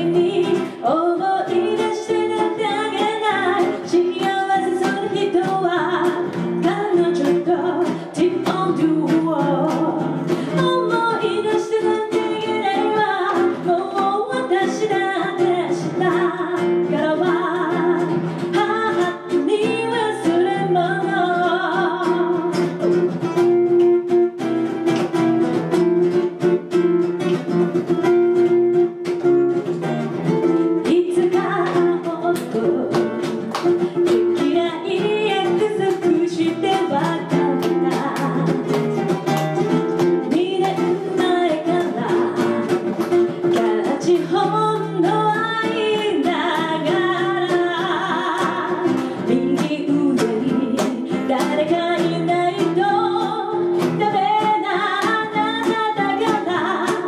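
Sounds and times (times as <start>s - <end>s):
woman singing a ballad: 0.0s - 22.8s, 30.8s - 38.7s, 40.2s - 57.0s
fingerpicked acoustic guitar: 0.0s - 57.0s.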